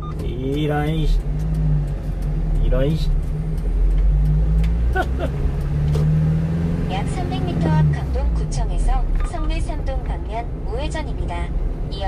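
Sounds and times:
truck engine pulling away: 0:00.0 - 0:09.8.

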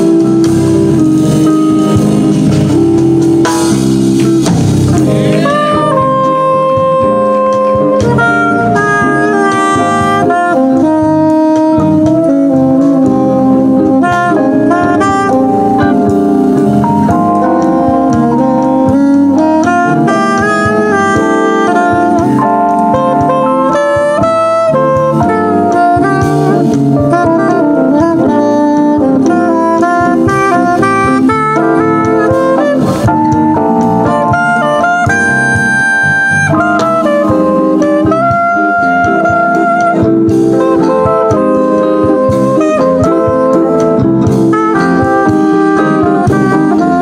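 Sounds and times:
jazz band playing: 0:00.0 - 0:47.0
soprano saxophone melody: 0:00.0 - 0:47.0.

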